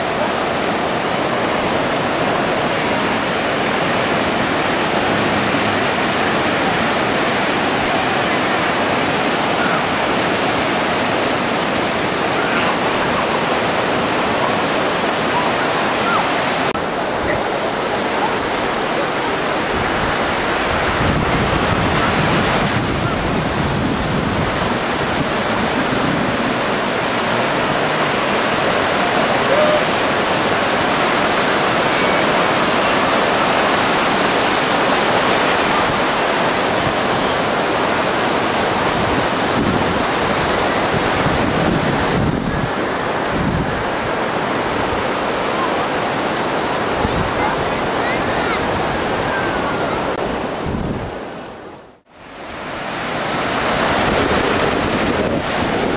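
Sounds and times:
ocean surf breaking on beach: 0.0 - 55.9.

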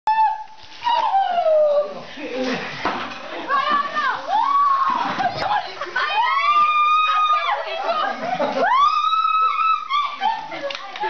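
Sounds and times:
high-pitched cries: 8.6 - 10.4.

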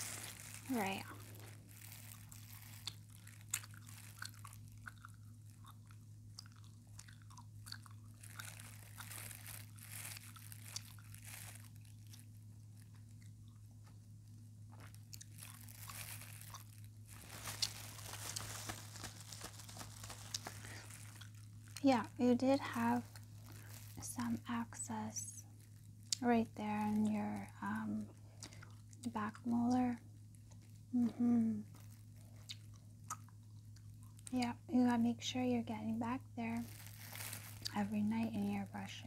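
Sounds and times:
clicks and crackles: 0.0 - 14.0, 14.7 - 34.6, 36.6 - 37.8
crinkling handling sounds: 0.0 - 39.0
steady low hum: 0.0 - 39.0.

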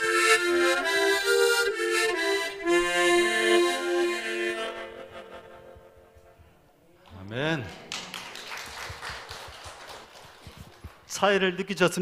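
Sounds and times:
harmonica notes: 0.0 - 6.6
light scattered applause: 7.0 - 11.4.

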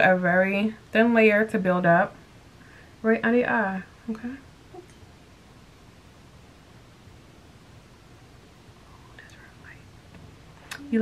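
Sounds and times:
faint whispered voice: 8.8 - 9.9.

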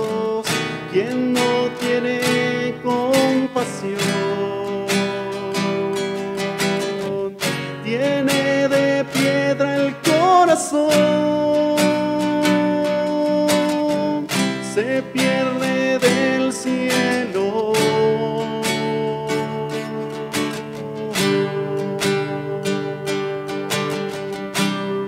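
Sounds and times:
man singing long notes: 0.0 - 23.7
classical guitar strumming chords: 0.0 - 25.0.

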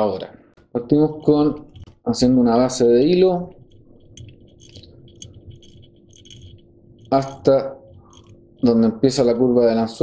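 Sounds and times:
thread ticking and rasping: 1.2 - 9.4.

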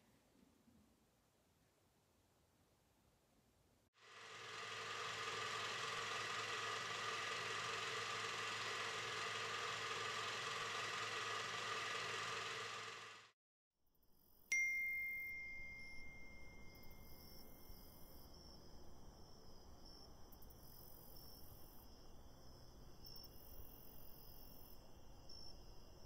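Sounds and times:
phone notification chime: 14.5 - 16.9.

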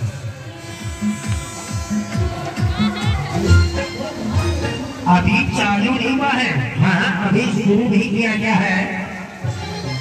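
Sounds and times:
electrical buzz: 0.0 - 5.6
music over horn loudspeakers: 0.0 - 10.0
voice over loudspeakers: 2.2 - 9.6.

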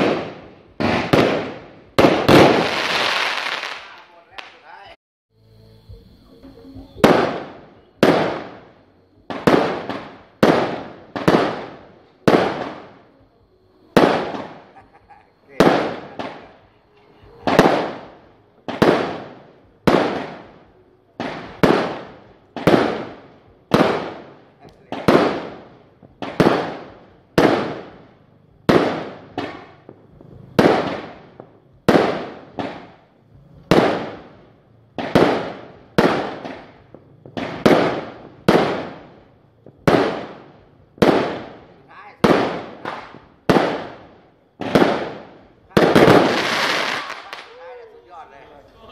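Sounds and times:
aerial fireworks bursting: 0.0 - 5.0, 6.9 - 13.1, 13.9 - 48.9.

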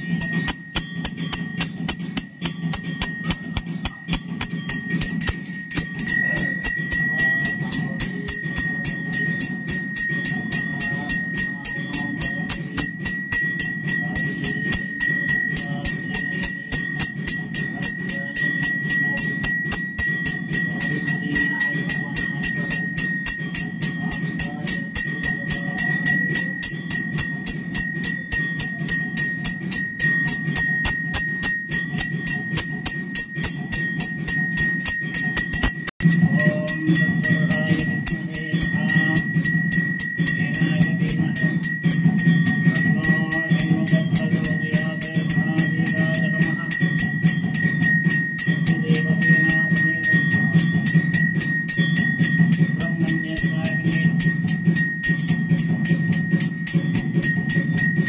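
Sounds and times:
bell rung rapidly: 0.0 - 58.0
steady low hum: 0.0 - 58.0.

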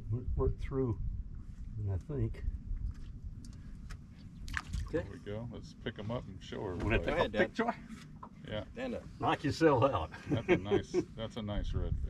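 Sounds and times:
steady low rumble: 0.0 - 7.8, 8.6 - 12.0.

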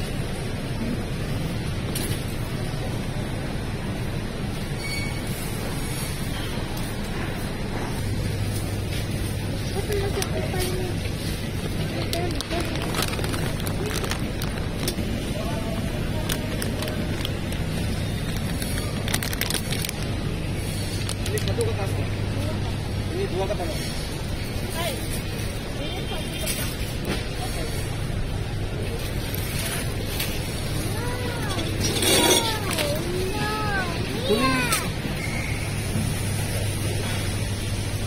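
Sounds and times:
faint indistinct voices: 5.4 - 37.5
plastic bag crinkling: 11.4 - 21.7.

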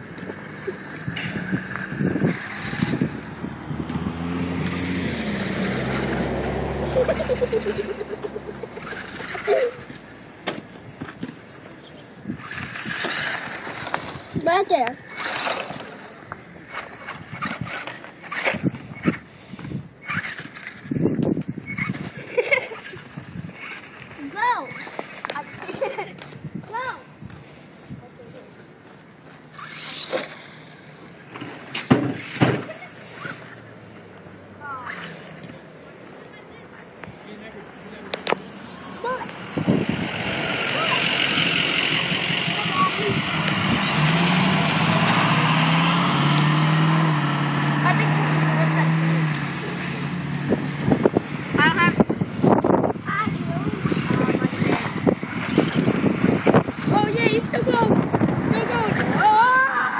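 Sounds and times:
electric toy truck motor: 2.2 - 3.1, 7.0 - 10.0, 12.3 - 14.4, 15.0 - 16.1, 16.7 - 19.3, 20.0 - 26.0, 29.5 - 33.7, 34.6 - 35.6, 39.0 - 49.1, 53.8 - 56.8
children's voices: 11.8 - 16.1, 22.0 - 28.7, 34.6 - 37.2, 38.2 - 43.8, 47.7 - 50.1, 52.8 - 59.9.

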